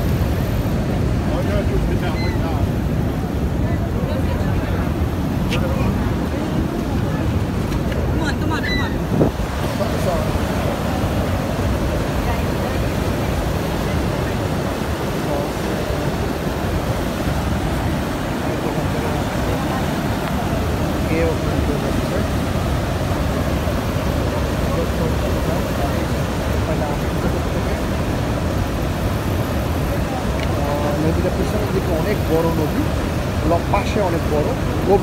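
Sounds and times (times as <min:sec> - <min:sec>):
rushing white water: 0:00.0 - 0:35.0.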